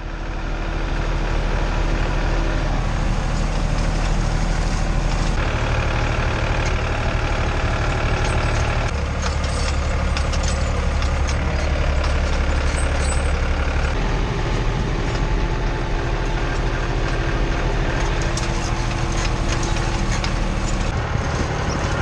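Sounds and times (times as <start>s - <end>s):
tractor engine running: 0.0s - 22.0s.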